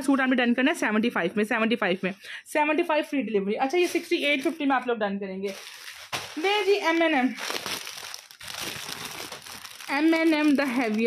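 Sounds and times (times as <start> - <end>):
plastic packaging crinkling: 3.6 - 4.6, 5.4 - 11.0.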